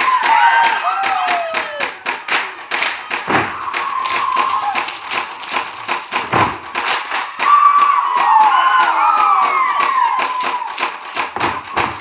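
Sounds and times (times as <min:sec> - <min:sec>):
rhythmic clapping: 0:00.0 - 0:12.0.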